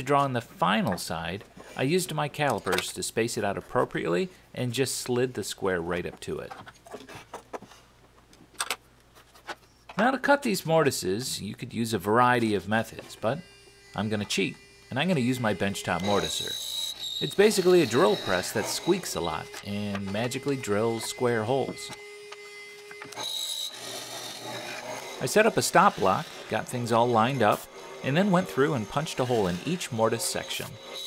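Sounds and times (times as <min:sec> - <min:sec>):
mortiser cutting wood: 0:12.3 - 0:31.0
high squeak of chisel: 0:15.2 - 0:23.8, 0:29.0 - 0:31.0.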